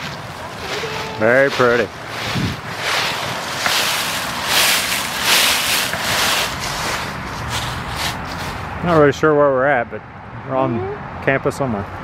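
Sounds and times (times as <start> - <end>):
footsteps in dry leaves: 0.0 - 9.1.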